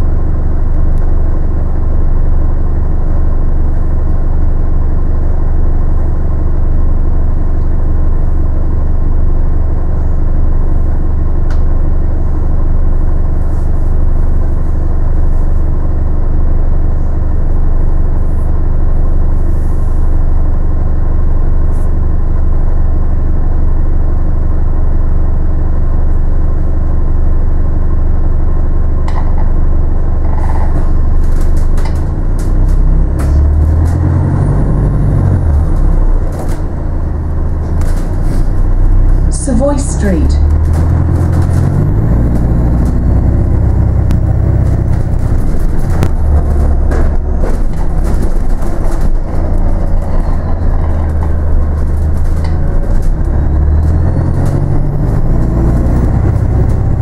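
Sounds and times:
bus engine and road rumble: 0:00.0 - 0:57.0
rattles and clicks: 0:30.2 - 0:34.2, 0:40.4 - 0:57.0.

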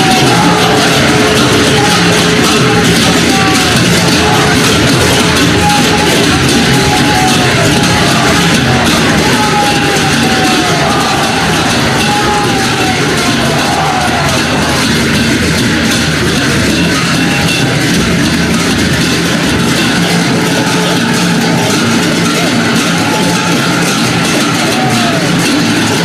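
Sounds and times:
drums being beaten: 0:00.0 - 0:26.0
large crowd noise: 0:00.0 - 0:26.0.

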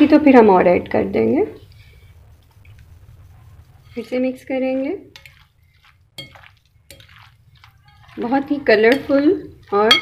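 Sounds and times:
soft wet stirring: 0:01.6 - 0:10.0
spoon clinking on glass: 0:06.2 - 0:07.1.

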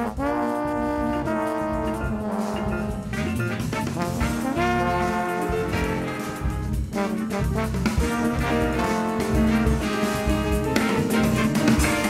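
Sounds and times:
drums and bass: 0:00.0 - 0:12.0
horn section sustained chords: 0:00.0 - 0:12.0.

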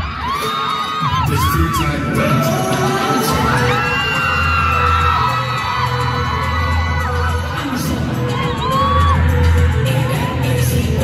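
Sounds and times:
fans screaming and whooping: 0:00.0 - 0:11.0
pop dance track over pa: 0:00.0 - 0:11.0.

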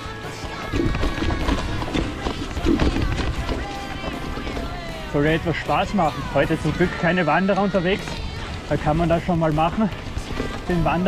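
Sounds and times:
background music: 0:00.0 - 0:11.0
mountain bike rattling and knocking: 0:00.4 - 0:11.0.

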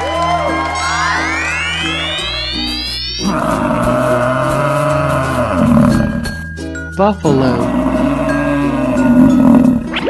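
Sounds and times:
rising whistle effect: 0:00.0 - 0:03.3
background music: 0:00.0 - 0:10.0
animal roar: 0:03.2 - 0:06.2, 0:07.5 - 0:10.0.

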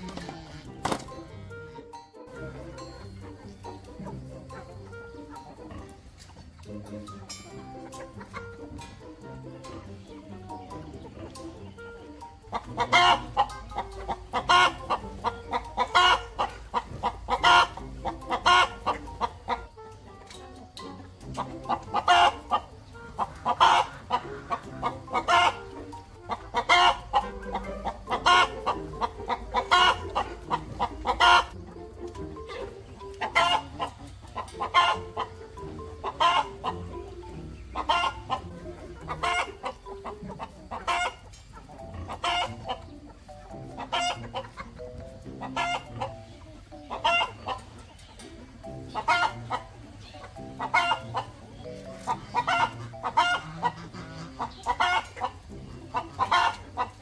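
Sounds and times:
chicken clucking: 0:00.0 - 0:57.0.

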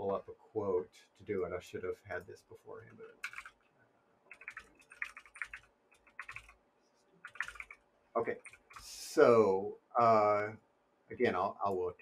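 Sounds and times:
computer keyboard typing: 0:03.0 - 0:03.7, 0:04.3 - 0:06.6, 0:07.2 - 0:08.9.

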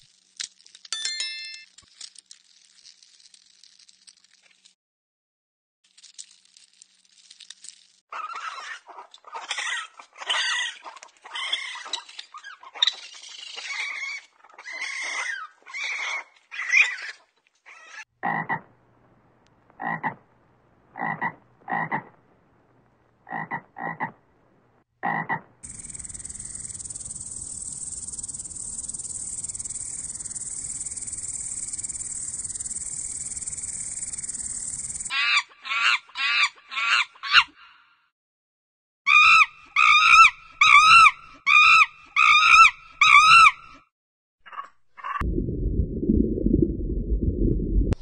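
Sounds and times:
pitched arching animal calls: 0:08.1 - 0:18.6, 0:39.1 - 0:43.6
frog croaking: 0:19.8 - 0:20.2, 0:20.9 - 0:22.2, 0:23.2 - 0:24.2, 0:25.0 - 0:35.1
insect buzzing stridulation: 0:25.6 - 0:35.1.

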